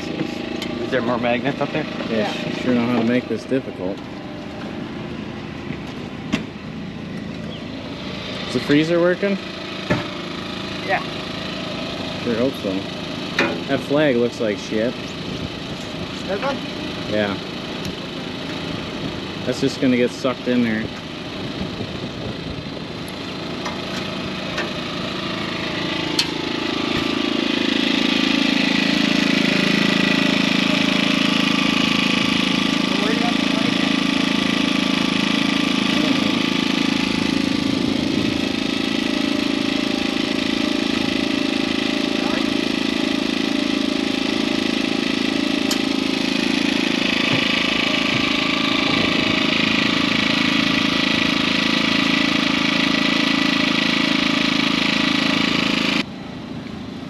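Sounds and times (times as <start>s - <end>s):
small engine running: 0.0s - 57.0s.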